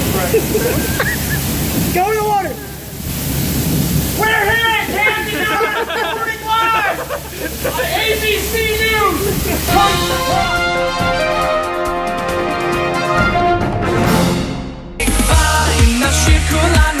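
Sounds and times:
heavy rain pouring: 0.0 - 13.2
man calling out: 1.9 - 2.9, 4.2 - 10.5
theme tune: 9.7 - 15.9.

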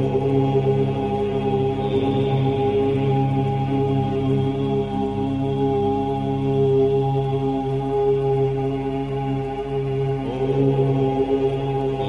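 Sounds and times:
droning mantra chanting: 0.0 - 12.0.

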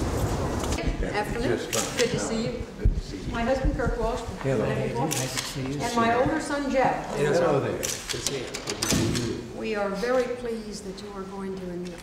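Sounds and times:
camera shutters clicking: 7.8 - 9.3.

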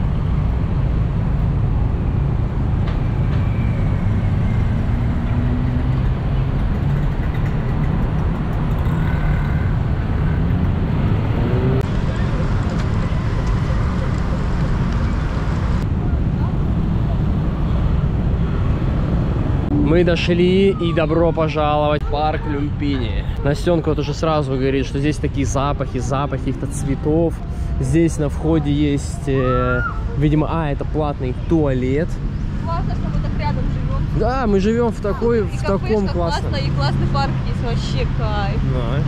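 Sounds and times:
car and motorbike engines passing: 0.0 - 39.0.

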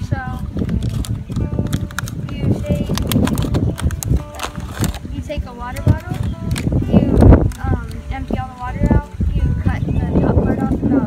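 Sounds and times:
plastic bottle crackling: 0.0 - 9.0.

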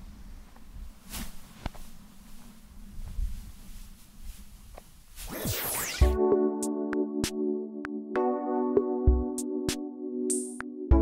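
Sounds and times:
falling swoosh transition effect: 5.3 - 6.2.

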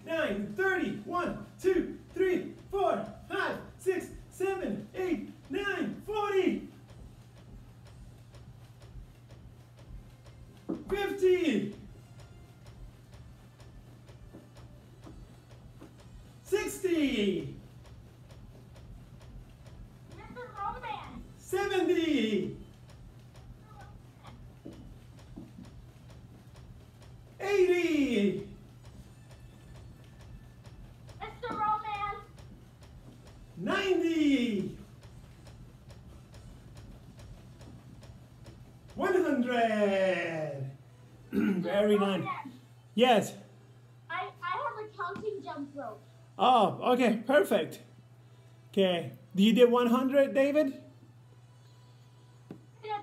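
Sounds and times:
faint regular taps: 0.0 - 40.4, 41.1 - 45.5, 52.4 - 52.8.

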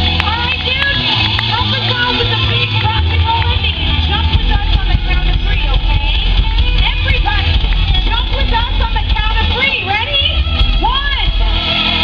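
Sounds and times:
voices: 0.0 - 11.4
rock band playing loudly: 0.0 - 12.0
strong bass: 0.0 - 12.0.

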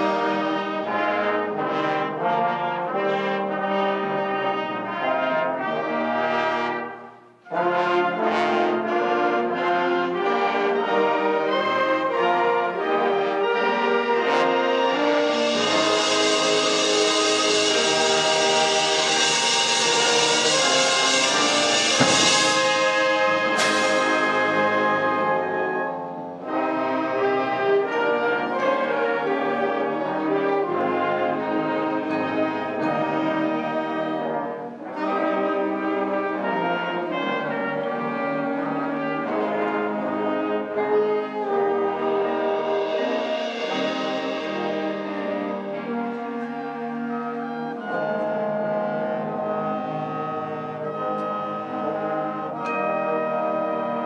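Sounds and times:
concert band playing: 0.0 - 54.0
cymbal crash: 14.8 - 25.5, 42.2 - 46.4.

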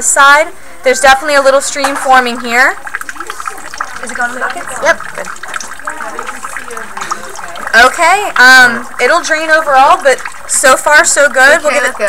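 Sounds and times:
faint chatter: 0.6 - 12.0
water trickling into a bucket: 0.9 - 12.0.

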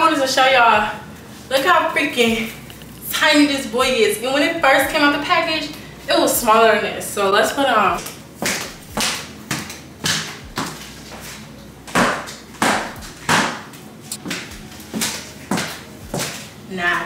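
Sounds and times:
footsteps on wood floor: 8.4 - 12.1.

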